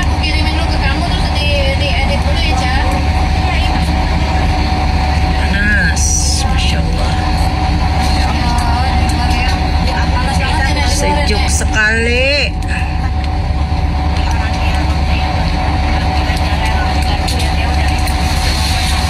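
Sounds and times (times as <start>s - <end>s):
faint voices: 0.0s - 19.0s
vehicle interior rumble: 0.0s - 19.0s.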